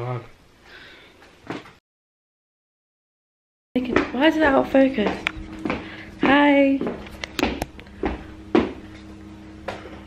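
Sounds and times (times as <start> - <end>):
steady low hum: 3.8 - 10.0.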